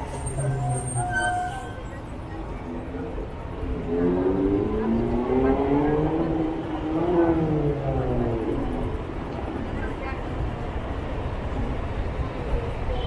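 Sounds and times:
traffic rumble: 0.0 - 13.0.

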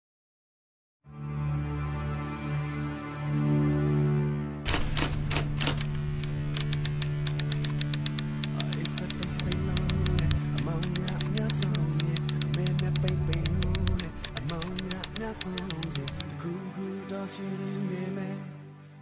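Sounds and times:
low music drone: 1.1 - 18.4
rapid typewriter clicking: 4.7 - 16.3.

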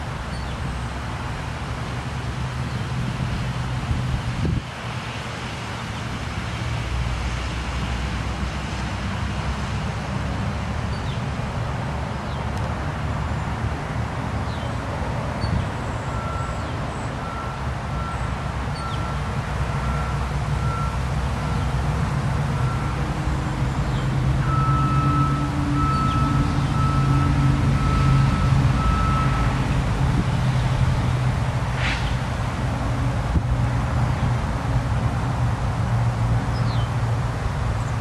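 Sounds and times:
reversing alarm beeping: 17.2 - 21.0, 24.4 - 29.6.

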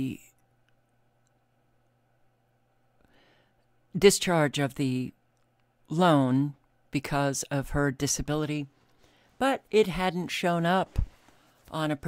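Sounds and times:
person speaking: 0.0 - 0.4, 3.9 - 5.2, 5.8 - 8.8, 9.4 - 12.0
faint low hum: 0.0 - 12.0.

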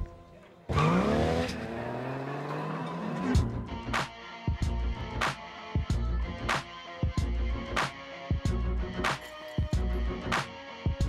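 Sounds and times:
car engine revving: 0.7 - 4.0.

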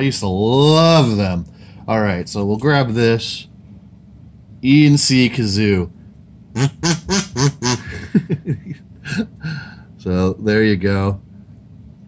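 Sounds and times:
kazoo buzzing notes: 6.5 - 8.1.

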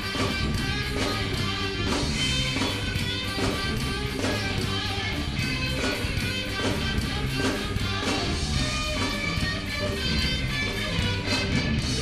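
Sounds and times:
bass guitar: 0.0 - 12.0
electric guitars: 0.0 - 12.0.

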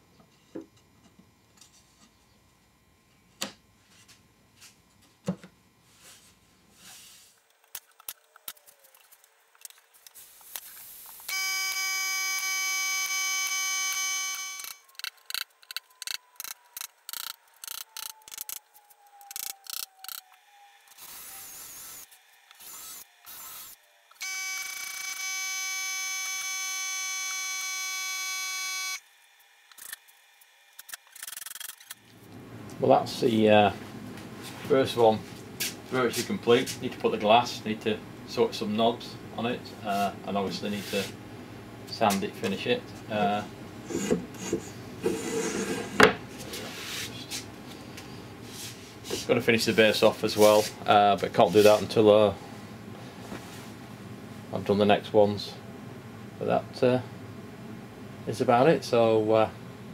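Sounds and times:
high-pitched whine: 10.2 - 30.0.

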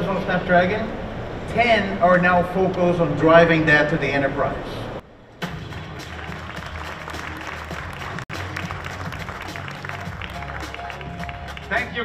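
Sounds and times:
music: 5.3 - 12.0
audience applauding: 5.6 - 12.0.

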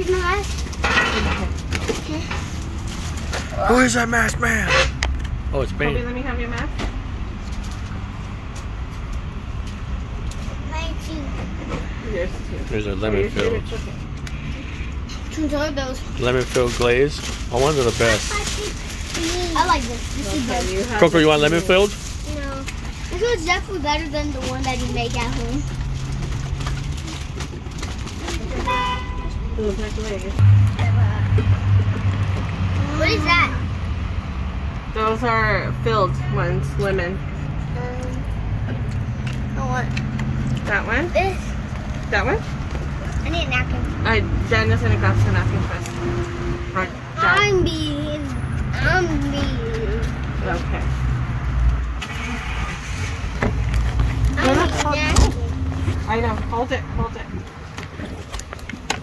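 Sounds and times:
outdoor background rumble: 0.0 - 59.0
vehicle horn toot: 28.6 - 29.4.

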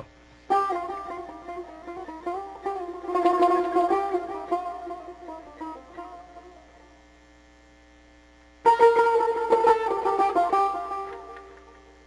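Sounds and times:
electrical mains hum: 0.0 - 12.0
plucked lute note: 0.5 - 6.9, 8.7 - 11.9.

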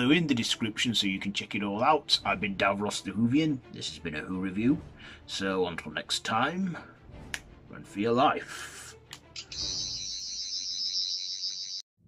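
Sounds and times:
toy screwdriver electronic whir: 9.4 - 11.8.

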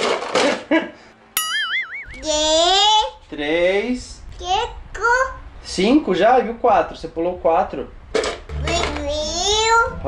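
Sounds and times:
cartoon boing sound effect: 1.4 - 2.3.

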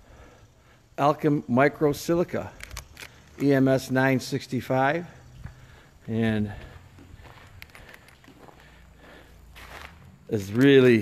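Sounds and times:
footsteps on dusty floor: 5.4 - 10.7.

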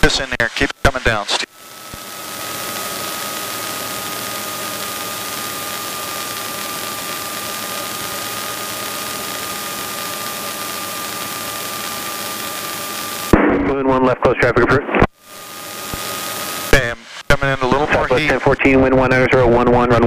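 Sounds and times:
thin steady whine: 0.0 - 20.0.

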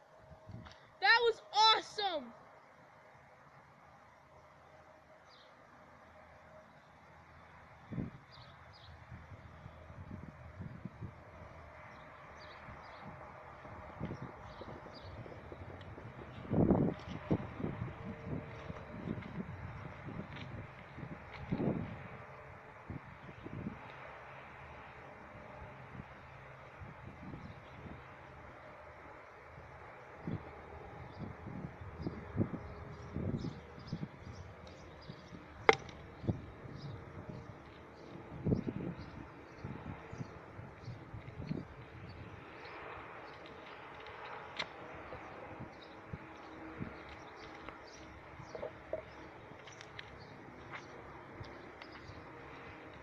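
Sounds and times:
wind rumbling on microphone: 0.0 - 0.8, 7.7 - 53.0.

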